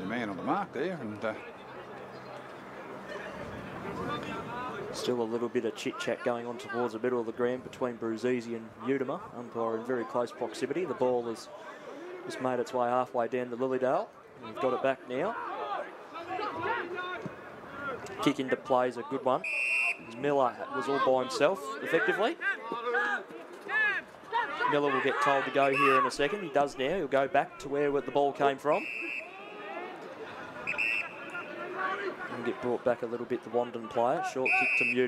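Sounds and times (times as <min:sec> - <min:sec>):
faint voices: 0:00.0 - 0:12.6, 0:14.1 - 0:35.0
whistle blast: 0:19.4 - 0:20.2, 0:25.7 - 0:26.1, 0:28.8 - 0:29.3, 0:30.6 - 0:31.6, 0:34.4 - 0:35.0
people talking: 0:24.4 - 0:28.9, 0:29.8 - 0:35.0.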